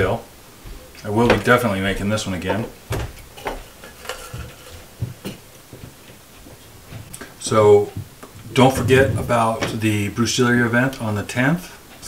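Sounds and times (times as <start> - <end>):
metal shaker tins knocking and clinking: 3.4 - 5.4.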